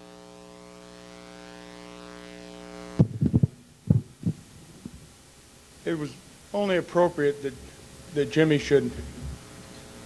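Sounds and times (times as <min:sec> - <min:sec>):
microphone handling thumps: 0:03.0 - 0:05.2, 0:08.9 - 0:09.5.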